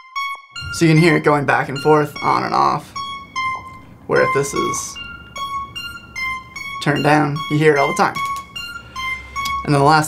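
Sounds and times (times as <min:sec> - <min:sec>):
arpeggiated square-wave synth: 0:00.0 - 0:10.0.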